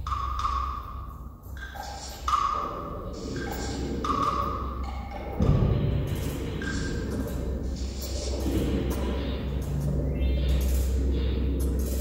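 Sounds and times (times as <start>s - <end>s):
electroacoustic music with percussion: 0.0s - 12.0s.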